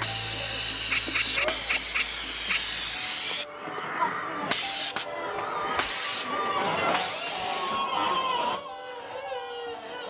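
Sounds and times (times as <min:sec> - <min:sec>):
loud steady hiss: 0:00.0 - 0:03.5.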